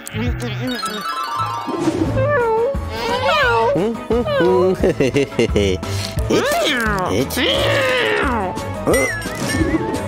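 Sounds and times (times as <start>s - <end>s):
background music: 0.0s - 10.0s
cartoon cat meowing: 6.3s - 8.5s.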